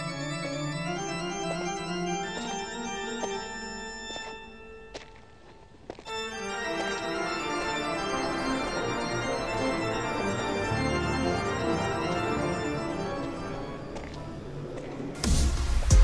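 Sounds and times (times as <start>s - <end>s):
organ chords: 0.0s - 14.4s.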